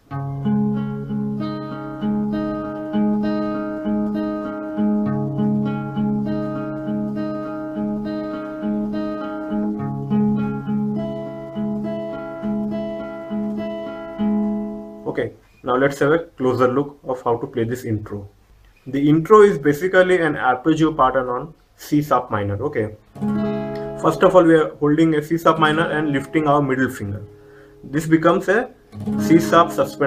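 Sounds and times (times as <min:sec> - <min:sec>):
acoustic guitar arpeggio: 0:00.0 - 0:15.2, 0:23.0 - 0:30.0.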